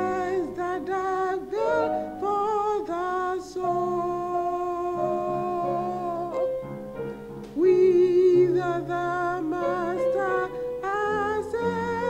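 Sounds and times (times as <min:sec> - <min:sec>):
woman singing a hymn: 0:00.0 - 0:06.5, 0:07.5 - 0:12.0.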